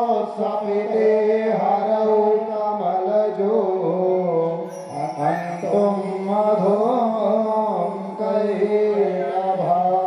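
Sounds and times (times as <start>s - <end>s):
person singing devotional hymn: 0.0s - 10.0s.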